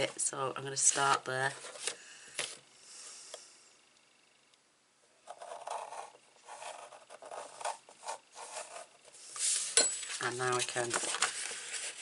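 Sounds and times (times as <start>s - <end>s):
score tool scraping paper: 5.3s - 9.8s.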